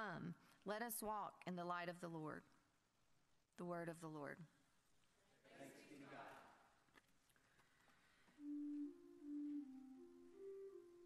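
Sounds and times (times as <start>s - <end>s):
organ playing slow melody: 8.4s - 11.0s.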